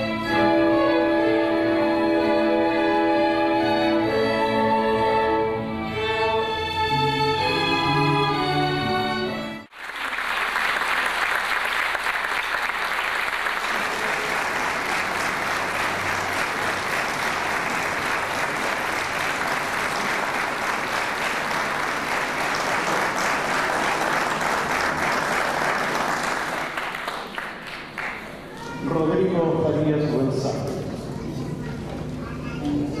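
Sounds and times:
audience applauding: 0:09.7 - 0:28.8.

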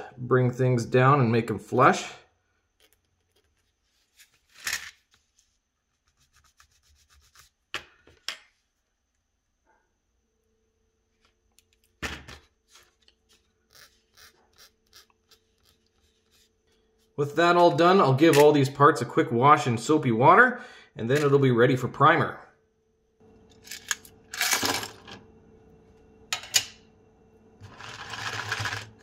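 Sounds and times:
needle file scraping metal: 0:13.3 - 0:17.1.

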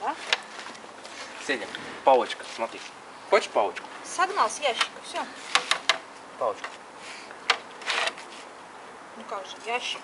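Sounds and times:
scraping rustle: 0:00.0 - 0:03.0, 0:05.3 - 0:08.6.

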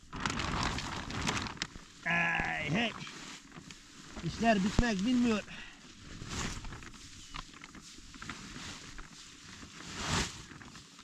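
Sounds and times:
straw rustling as shovelled: 0:00.1 - 0:11.0.

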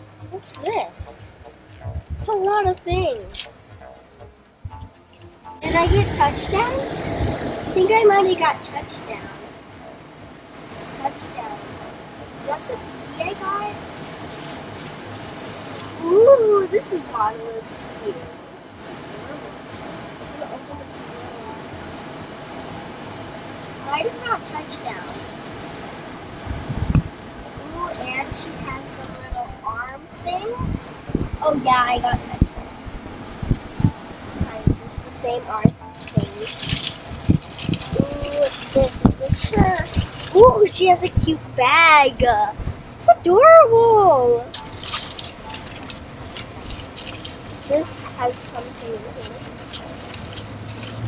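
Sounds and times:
low background hum: 0:00.0 - 0:51.0
plastic wrapper crinkling: 0:12.6 - 0:16.0, 0:21.4 - 0:27.2, 0:35.9 - 0:40.6, 0:44.5 - 0:51.0
rustling of plastic accessories: 0:12.6 - 0:16.0, 0:21.4 - 0:27.2, 0:35.9 - 0:40.7, 0:44.5 - 0:51.0.

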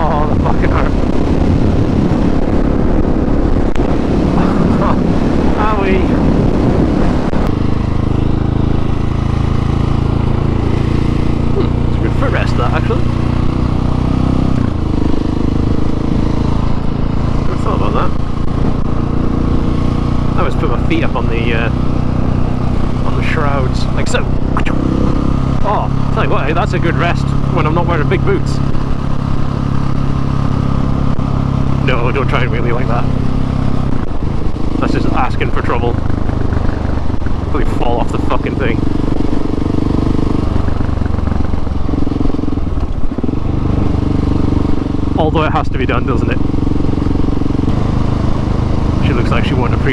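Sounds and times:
motorcycle engine cruising: 0:00.0 - 0:49.9.

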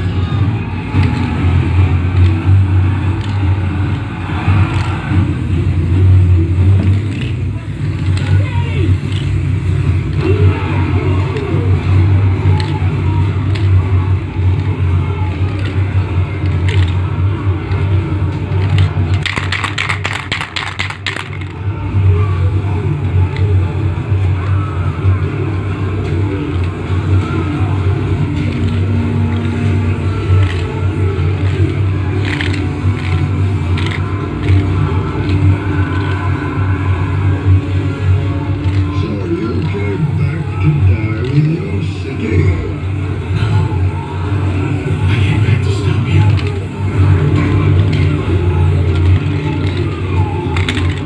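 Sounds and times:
steady low hum: 0:00.0 - 0:51.0
television audio with music: 0:00.0 - 0:51.0.

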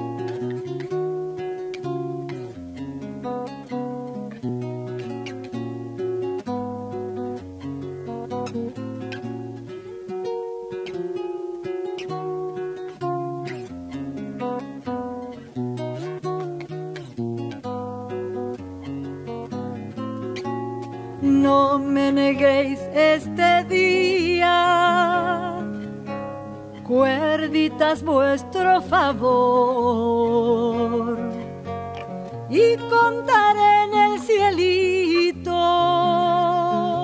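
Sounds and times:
classical guitar playing: 0:00.0 - 0:37.0.

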